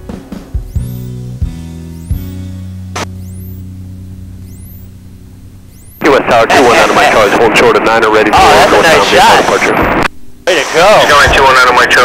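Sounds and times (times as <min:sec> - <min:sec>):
background music with low notes: 0:00.0 - 0:06.0.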